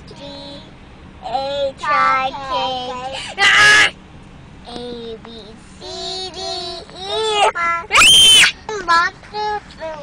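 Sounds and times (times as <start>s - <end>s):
girl singing: 0.0s - 3.9s, 4.6s - 8.0s.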